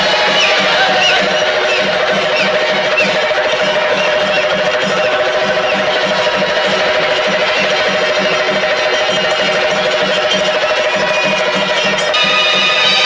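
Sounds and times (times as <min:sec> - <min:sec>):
drums beaten with sticks: 0:00.0 - 0:13.0.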